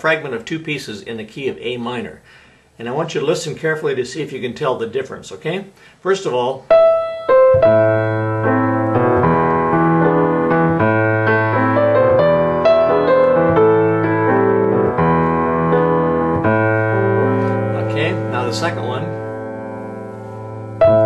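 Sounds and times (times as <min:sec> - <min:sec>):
piano playing chords: 0:06.7 - 0:21.0.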